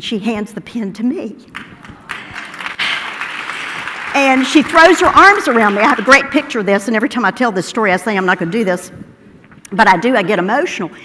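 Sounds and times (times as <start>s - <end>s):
audience applauding: 1.5s - 6.4s.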